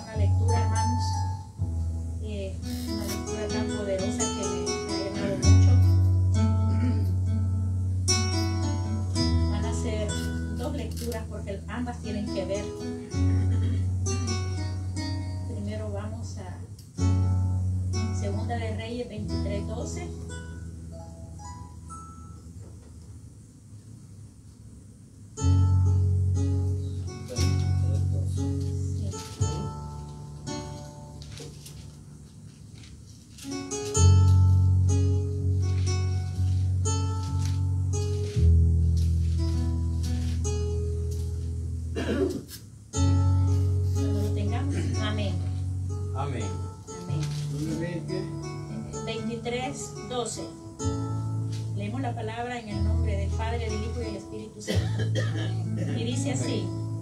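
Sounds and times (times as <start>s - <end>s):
electronic keyboard plucked chords: 0.0s - 23.1s, 25.4s - 32.4s, 33.5s - 57.0s
deep bass note: 5.0s - 10.6s, 11.5s - 15.7s.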